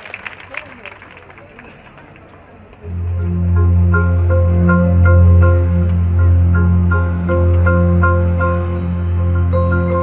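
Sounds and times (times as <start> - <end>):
applause: 0.0 - 2.8
spectators murmuring and talking: 0.0 - 10.0
marching band playing: 2.9 - 10.0.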